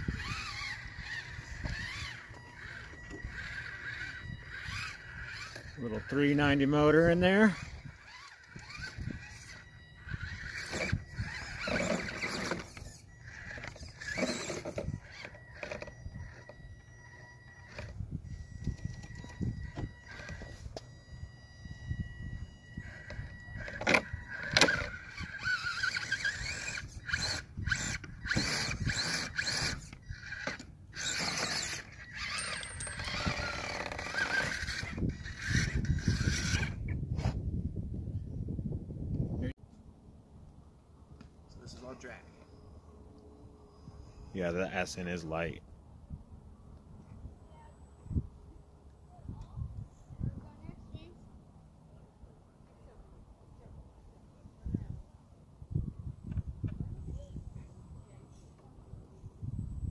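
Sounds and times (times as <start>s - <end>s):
small electric motor whining: 0.0s - 37.5s, 41.6s - 45.2s.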